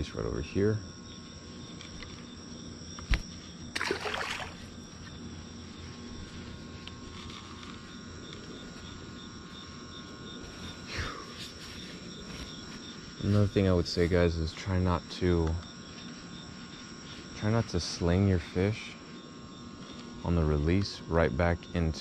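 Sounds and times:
crickets chirping: 0.0 - 22.0
fish splashing into water: 3.7 - 4.7.

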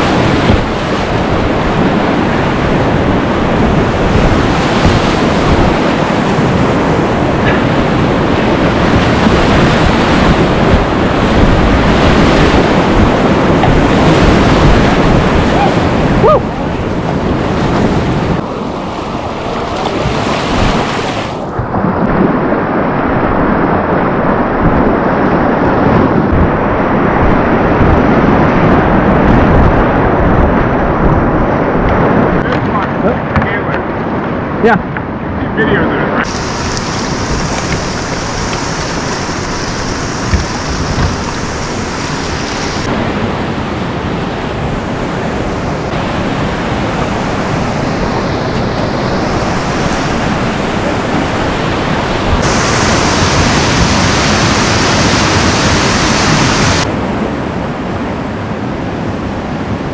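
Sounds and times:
whitewater rushing and splashing: 0.0 - 59.9.

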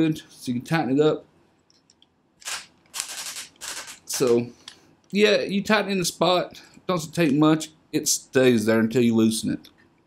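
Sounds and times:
rapid ratchet clicks: 2.4 - 4.4.

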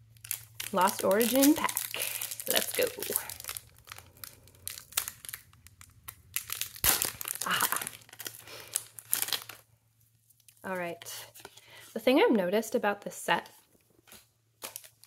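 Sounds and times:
foil pack crinkling: 0.0 - 11.8, 14.0 - 15.0.

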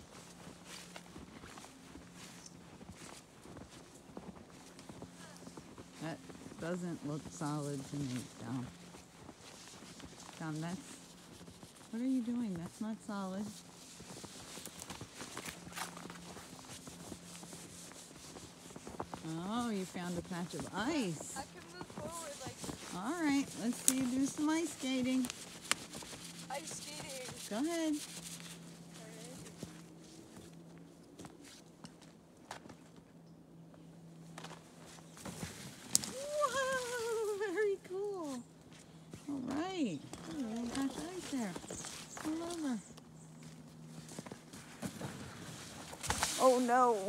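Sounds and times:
crunching snow and ice: 0.0 - 32.9, 34.1 - 47.0
footsteps on ice and snow: 13.3 - 32.9.

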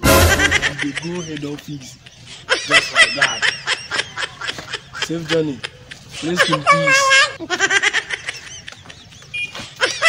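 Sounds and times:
person laughing in high bursts: 0.1 - 1.6, 2.5 - 10.0.

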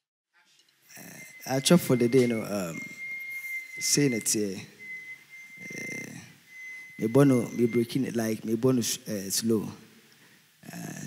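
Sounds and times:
faint high-pitched whine: 0.4 - 11.0.

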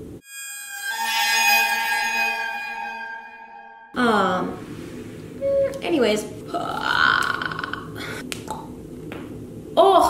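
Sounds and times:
electronic bell-like tone: 0.2 - 4.2, 5.4 - 5.8.

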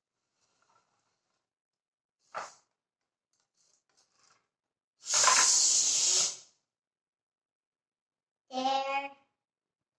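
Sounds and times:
bike pump air hissing: 5.0 - 6.6.

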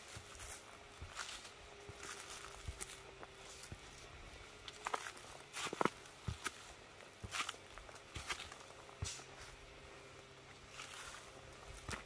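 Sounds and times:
footsteps crunching dry leaves: 0.0 - 12.0.

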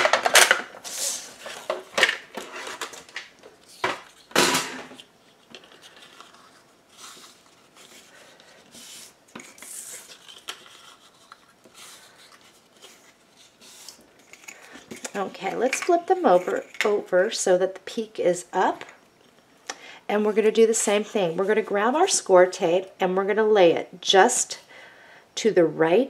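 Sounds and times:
paper rustling and creasing: 4.9 - 15.3.

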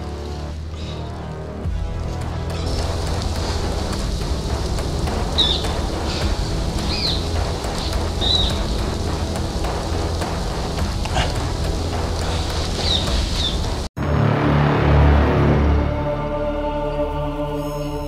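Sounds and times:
even hiss: 0.0 - 13.9
low steady drone: 1.6 - 18.0
birds chirping: 2.5 - 13.9.

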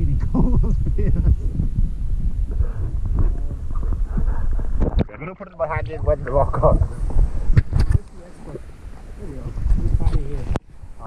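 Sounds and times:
muffled underwater rumbling: 0.0 - 11.0
muffled voices: 2.6 - 10.6.

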